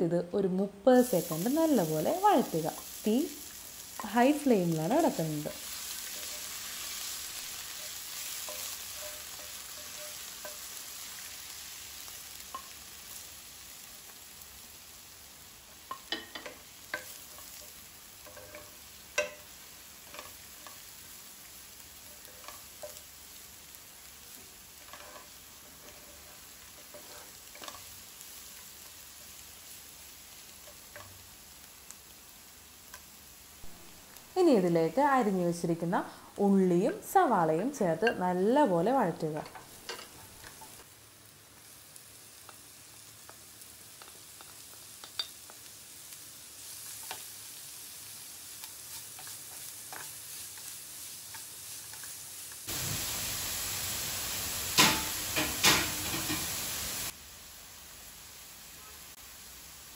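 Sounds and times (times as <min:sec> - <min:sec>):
oil sizzling in a wok: 0:00.4 - 0:59.9
wooden spatula scraping a pan: 0:05.6 - 0:11.3, 0:24.8 - 0:28.0.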